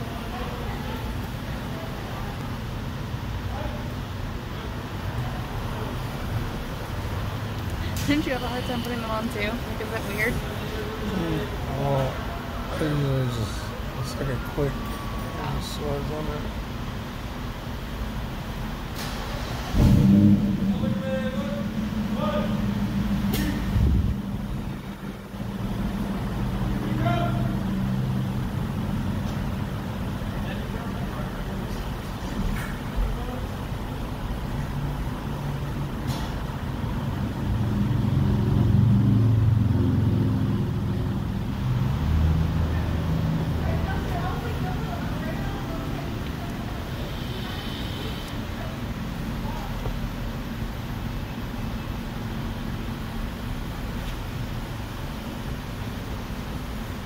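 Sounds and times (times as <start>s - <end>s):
low steady rumble: 0.0s - 57.0s
muffled voices: 20.5s - 28.3s.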